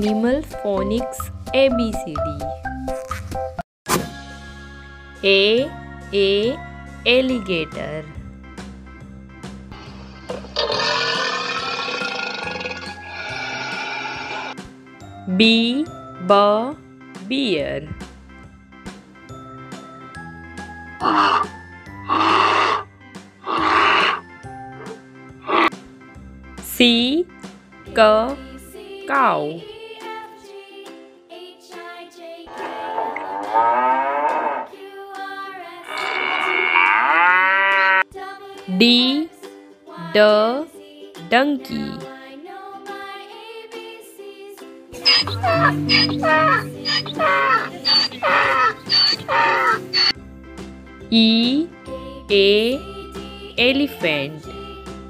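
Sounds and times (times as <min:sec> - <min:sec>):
background music: 0:00.0 - 0:55.0
bear growling: 0:09.8 - 0:14.6, 0:21.0 - 0:25.8, 0:32.5 - 0:34.7, 0:35.8 - 0:38.0, 0:45.0 - 0:50.1
donkey braying: 0:10.3 - 0:14.6, 0:21.0 - 0:25.8, 0:32.5 - 0:34.7, 0:35.8 - 0:38.0, 0:45.0 - 0:50.2.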